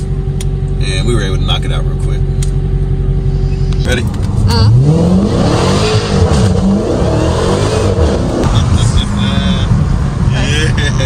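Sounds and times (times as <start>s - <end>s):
car engine revving hard: 3.8s - 11.0s.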